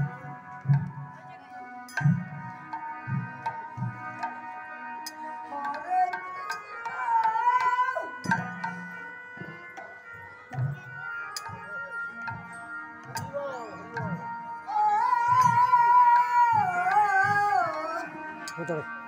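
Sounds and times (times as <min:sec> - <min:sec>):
harmonium holding notes: 0:00.0 - 0:19.0
man singing: 0:05.4 - 0:08.9, 0:14.6 - 0:19.0.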